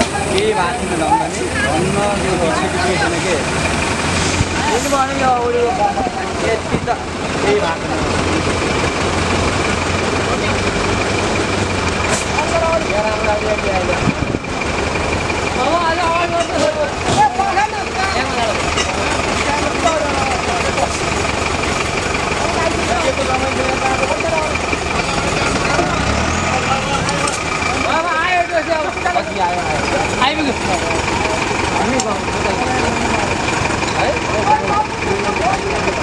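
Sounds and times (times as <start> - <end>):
minibus engine at low revs: 0.0 - 36.0.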